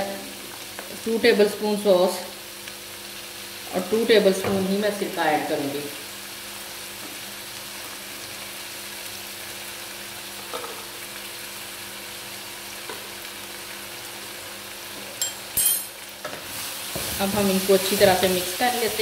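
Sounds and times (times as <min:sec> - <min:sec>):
vegetables frying in a wok: 0:00.0 - 0:19.0.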